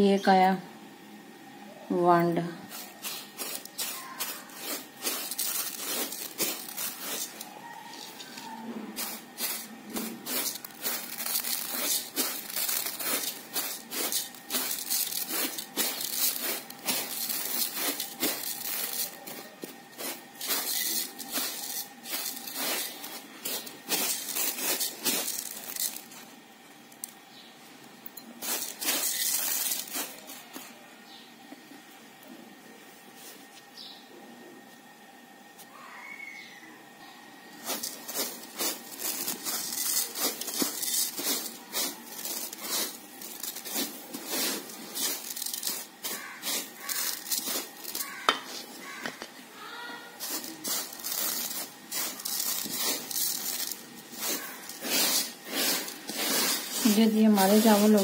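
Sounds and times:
dry rice grains rustling on a tray: 0:02.3 - 0:26.4, 0:28.4 - 0:30.8, 0:37.5 - 0:49.1, 0:49.7 - 0:58.0.

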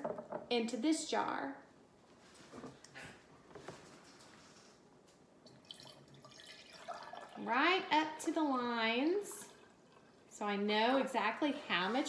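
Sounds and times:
water pouring into glass jar: 0:05.5 - 0:07.7.

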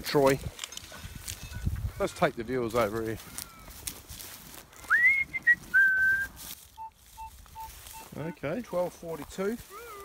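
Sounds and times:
high whistle-like tone: 0:04.9 - 0:08.1
faint low beeps: 0:06.7 - 0:08.7.

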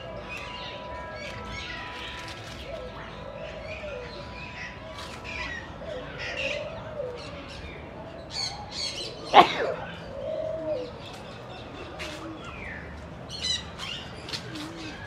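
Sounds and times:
birds chirping and tweeting: 0:00.0 - 0:15.0
low cooing calls: 0:02.6 - 0:07.7, 0:08.3 - 0:15.0.

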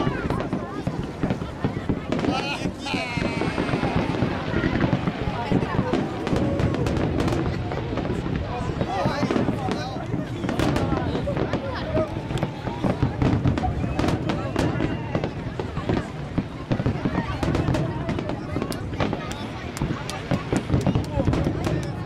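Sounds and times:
fireworks bursting: 0:00.0 - 0:22.0.

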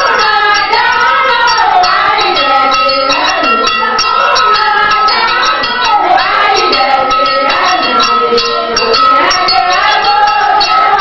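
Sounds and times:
metallic rhythmic percussion: 0:00.0 - 0:11.0
voices singing: 0:00.0 - 0:11.0.

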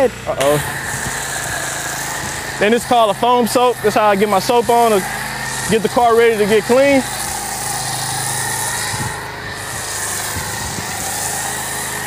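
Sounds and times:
pressure washer spray hiss: 0:00.0 - 0:12.0
washer motor hum: 0:00.0 - 0:12.0.

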